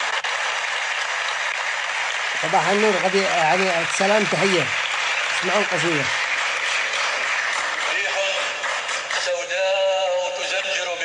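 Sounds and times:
audience applause: 0.0 - 9.5.

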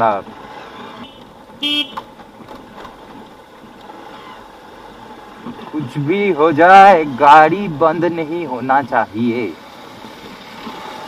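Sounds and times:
motorcycle engine: 0.0 - 11.0
road noise: 0.0 - 11.0.

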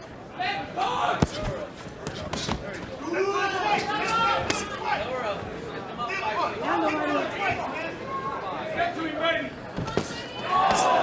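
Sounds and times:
crowd shouting: 3.0 - 5.2, 9.8 - 11.0.

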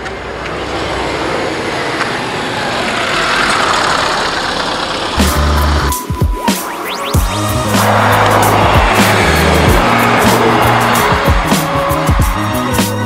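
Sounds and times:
motor vehicle rushing: 0.0 - 12.7
music with low bass line: 5.2 - 13.0.

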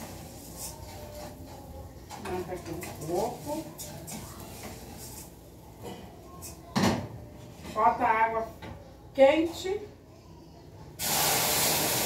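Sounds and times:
spoon scraping in a pot: 0.0 - 5.4.

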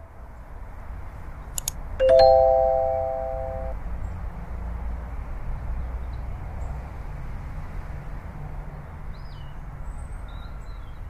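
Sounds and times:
quick clicks: 1.6 - 1.8
bell-like chime: 2.0 - 3.8.

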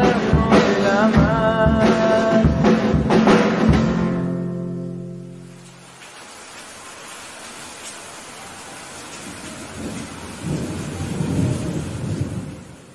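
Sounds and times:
steady rain hiss: 0.0 - 12.9
low roll of thunder: 9.6 - 12.9.

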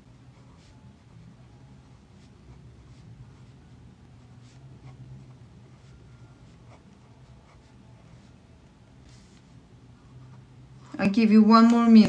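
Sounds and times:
pen scratching on paper: 0.0 - 8.4
low steady hum: 0.0 - 12.0.

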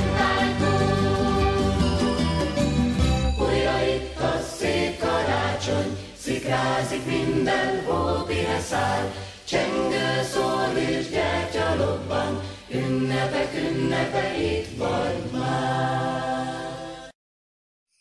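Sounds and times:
choir singing with accompaniment: 0.0 - 17.2.

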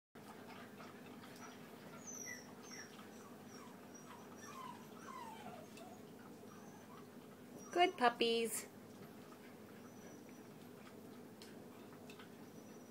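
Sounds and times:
puppies eating from metal bowls: 0.2 - 12.9
puppies whining: 0.5 - 8.2, 9.0 - 12.9.

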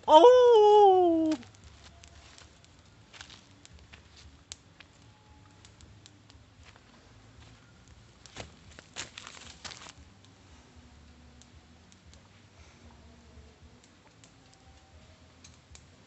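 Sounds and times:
campfire crackling: 0.0 - 16.0
dry leaves rustling: 1.1 - 4.4, 8.2 - 10.1.

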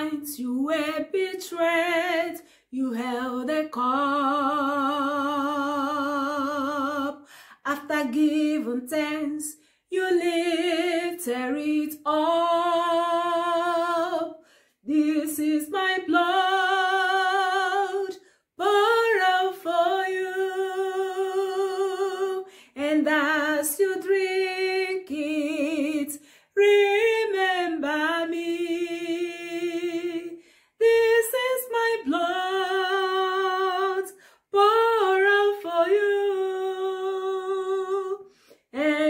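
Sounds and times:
woman singing a hymn unaccompanied: 0.0 - 39.0
woman breathing in: 7.2 - 7.6, 14.4 - 14.8, 22.5 - 22.8, 26.2 - 26.6, 30.4 - 30.8, 34.2 - 34.5, 38.2 - 38.8.

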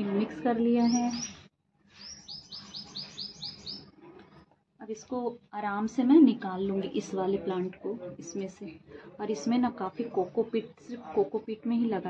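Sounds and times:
small bird chirping: 0.8 - 3.9.

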